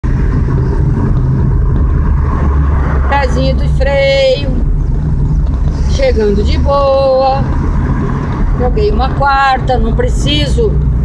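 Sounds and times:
car engine and road rumble: 0:00.0 - 0:11.0.

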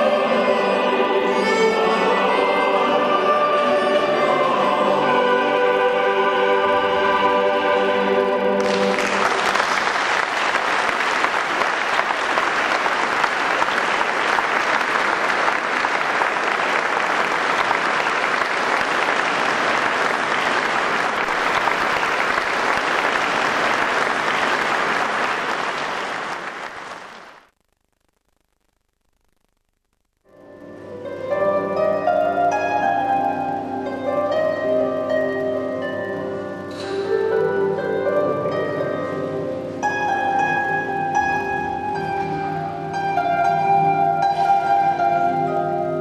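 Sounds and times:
choir holding chord: 0:00.0 - 0:26.2
audience applauding: 0:08.6 - 0:27.5.

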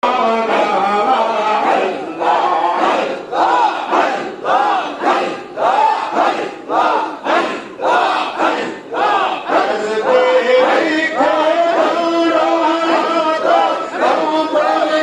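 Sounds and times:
men chanting in unison: 0:00.0 - 0:15.0.

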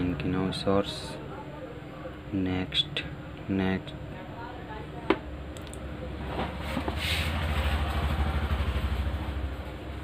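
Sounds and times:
vehicle engine rumbling: 0:06.0 - 0:10.0.

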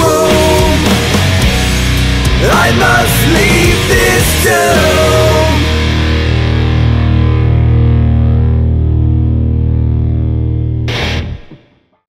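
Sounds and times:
distorted guitar chord ringing: 0:00.0 - 0:11.9.

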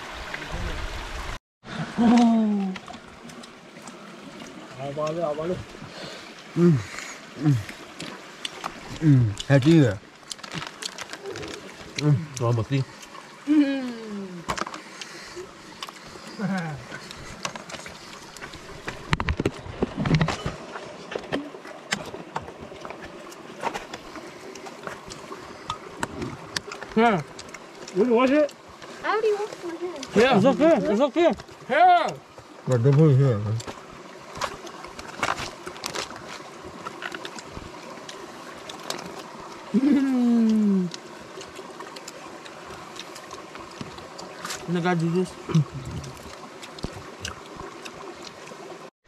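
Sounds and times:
creek water running: 0:00.0 - 0:48.9
person's wordless vocal sounds: 0:06.5 - 0:07.8, 0:08.9 - 0:09.5, 0:39.7 - 0:41.0.

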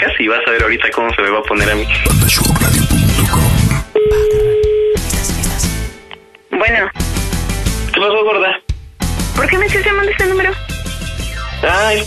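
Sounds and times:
show music with voices: 0:00.0 - 0:04.0, 0:05.0 - 0:12.0
single-pitched telephone tone: 0:04.0 - 0:05.0.

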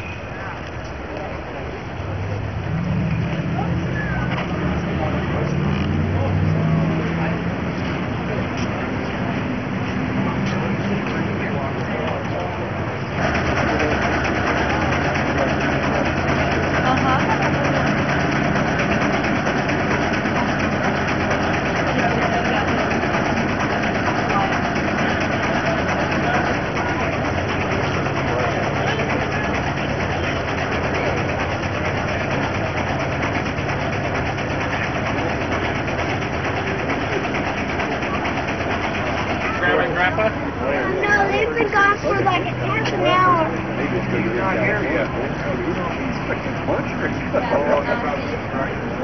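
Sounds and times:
engine idling: 0:00.0 - 0:49.0
people talking: 0:00.0 - 0:49.0.

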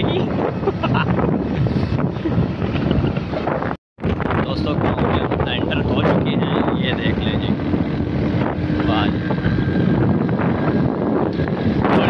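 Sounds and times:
wind buffeting microphone: 0:00.0 - 0:12.0
motorcycle engine running: 0:06.0 - 0:12.0.

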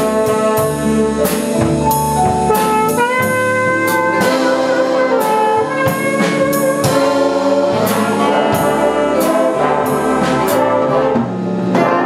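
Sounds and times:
big jazz band playing: 0:00.0 - 0:12.0
horns holding sustained chords: 0:00.0 - 0:12.0
steady cymbal beat: 0:00.0 - 0:12.0.

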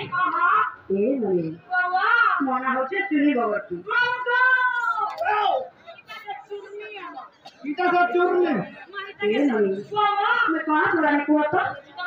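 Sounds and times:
woman speaking: 0:00.0 - 0:05.1, 0:06.0 - 0:12.0.

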